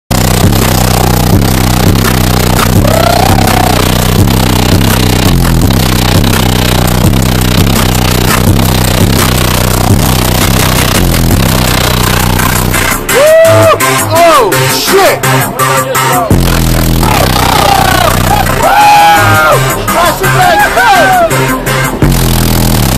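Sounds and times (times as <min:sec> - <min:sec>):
loud bass-heavy electronic music: 0:00.1 - 0:22.9
swooping synth tones: 0:00.1 - 0:22.9.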